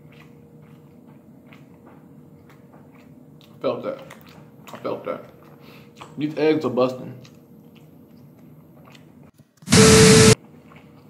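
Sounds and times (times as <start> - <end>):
static hiss with steady tone: 9.7 - 10.4.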